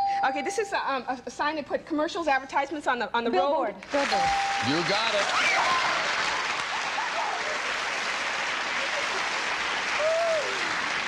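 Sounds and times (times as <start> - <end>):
studio audience applauding: 3.9 - 11.0
laughter: 8.8 - 9.4.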